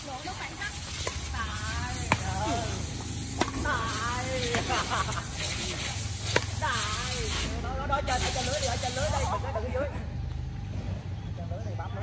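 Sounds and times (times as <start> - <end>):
steady background hiss: 0.0 - 9.5
players' voices: 0.0 - 12.0
racket striking shuttlecock: 0.5 - 7.1.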